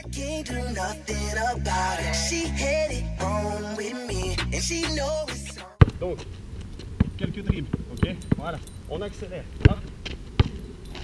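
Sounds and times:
hip hop music with vocal: 0.0s - 5.8s
basketball bounce on asphalt: 5.8s - 8.6s, 9.6s - 11.0s.

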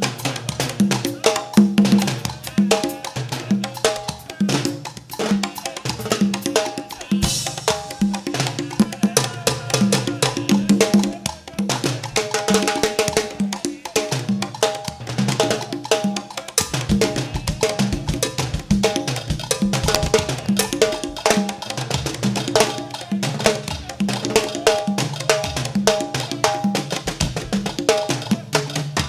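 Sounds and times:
drum kit and percussion: 0.0s - 29.0s.

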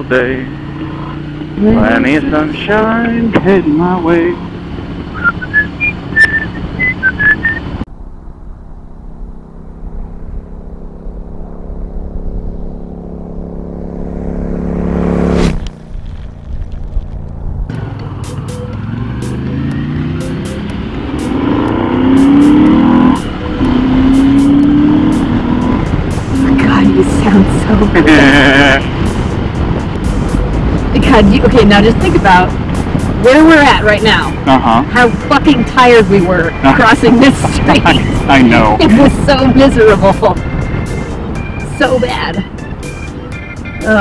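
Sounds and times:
motorcycle engine accelerating: 0.0s - 44.0s
rising whoosh: 4.7s - 31.0s
person whistling a tune: 5.1s - 7.7s
intro music with held notes: 17.7s - 44.0s.

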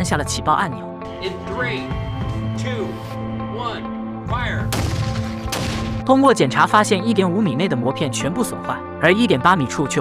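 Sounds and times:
background music: 0.0s - 10.0s
grenade explosion bangs: 4.7s - 6.1s.

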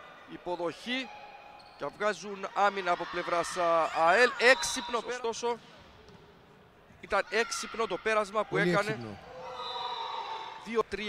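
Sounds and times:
sports hall background noise with echo: 0.0s - 11.0s.

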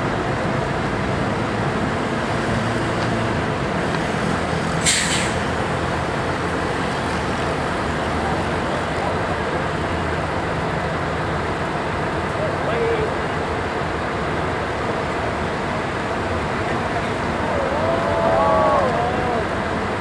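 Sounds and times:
bus diesel engine idling: 0.0s - 20.0s
air brake hiss: 4.8s - 5.5s.

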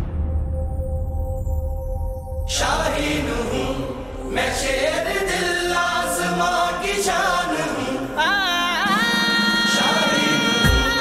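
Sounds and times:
group of voices singing: 2.5s - 11.0s
backing music: 8.9s - 11.0s.

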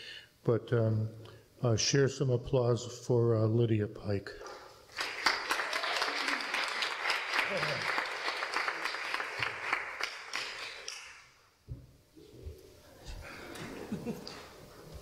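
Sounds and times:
crowd applauding: 4.9s - 11.3s.

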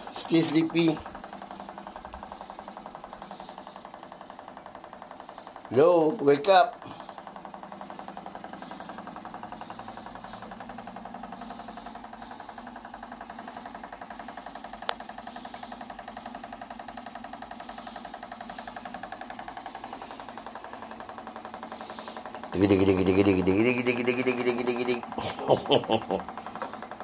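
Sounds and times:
vibration machine buzzing rattle: 0.0s - 27.0s.

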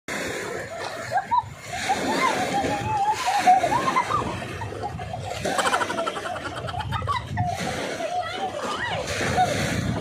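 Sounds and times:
seawater splashing and sloshing: 0.1s - 10.0s.

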